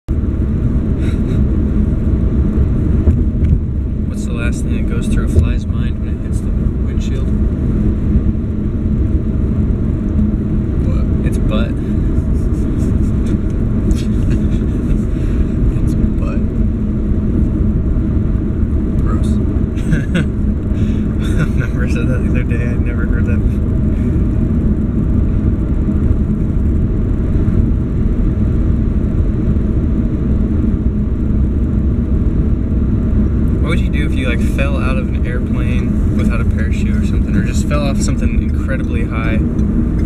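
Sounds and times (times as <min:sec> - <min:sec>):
car road and engine rumble: 0:00.0 - 0:40.0.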